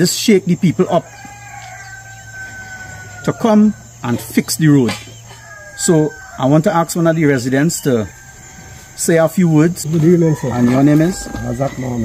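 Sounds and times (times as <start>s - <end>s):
rooster crowing: 0.8s - 12.0s.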